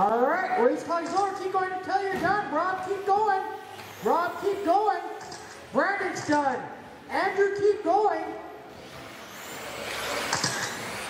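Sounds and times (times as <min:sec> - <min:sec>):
radio-controlled cars running: 0:00.0 - 0:06.6, 0:08.6 - 0:11.0.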